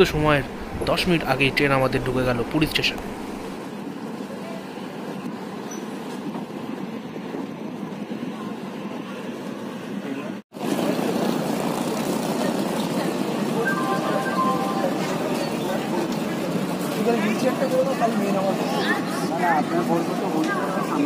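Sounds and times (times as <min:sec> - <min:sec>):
station platform hubbub: 0:00.0 - 0:21.0
train running noise from inside: 0:00.0 - 0:21.0
people's voices: 0:12.2 - 0:21.0.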